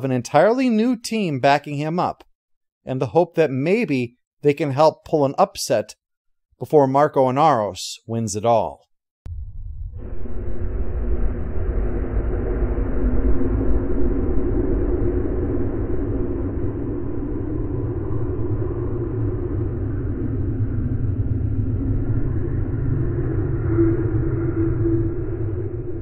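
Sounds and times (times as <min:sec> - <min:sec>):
deep rumbling drone: 0:09.3 - 0:26.0
faint sustained tones: 0:09.3 - 0:26.0.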